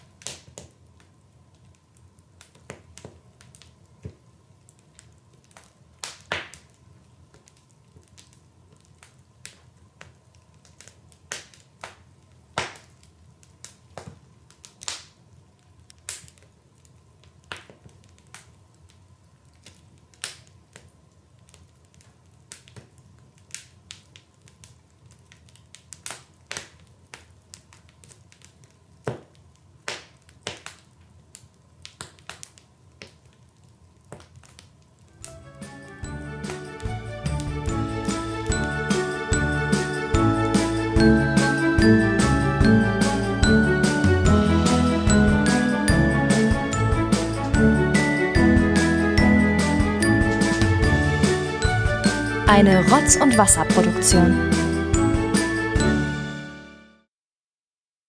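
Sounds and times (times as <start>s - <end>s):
sharp crackles and snaps: 0.0s - 35.3s.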